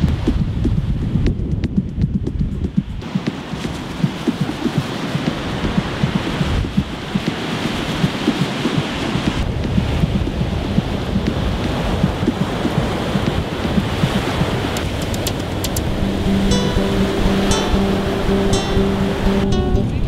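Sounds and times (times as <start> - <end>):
wind buffeting microphone: 0.0 - 20.0
surf washing onto beach: 3.0 - 20.0.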